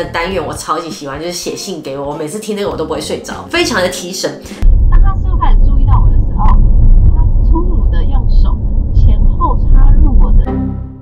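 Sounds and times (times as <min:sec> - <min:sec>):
road and engine rumble: 0:04.6 - 0:10.5.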